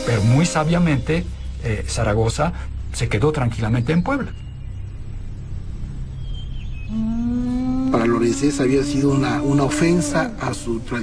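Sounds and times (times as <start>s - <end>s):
low music drone: 0.0s - 11.0s.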